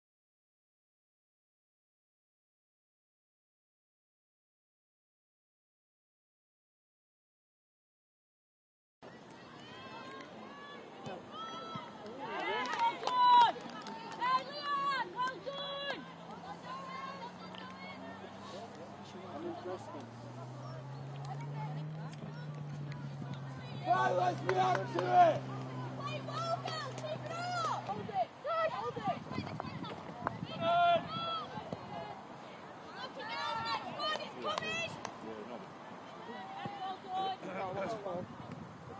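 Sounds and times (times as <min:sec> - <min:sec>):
women shouting and cheering: 0:09.4 - 0:18.4, 0:20.8 - 0:32.1, 0:32.9 - 0:35.0
woman shouting in celebration: 0:12.5 - 0:16.0, 0:25.8 - 0:29.3.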